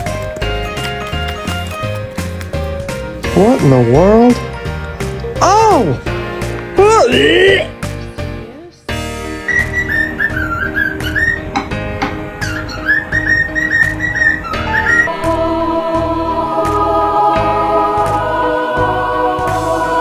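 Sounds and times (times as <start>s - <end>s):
background music with steady beat: 0.0s - 20.0s
cockatiel whistling: 9.3s - 11.7s, 12.4s - 15.2s.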